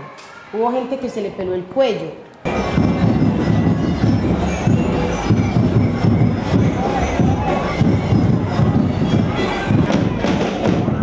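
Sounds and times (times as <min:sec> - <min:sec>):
crowd noise: 0:00.0 - 0:11.0
marching band drums: 0:02.5 - 0:11.0.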